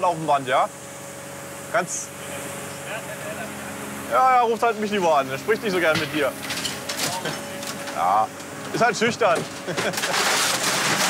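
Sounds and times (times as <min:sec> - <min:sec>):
excavator engine idling: 0:01.7 - 0:11.0.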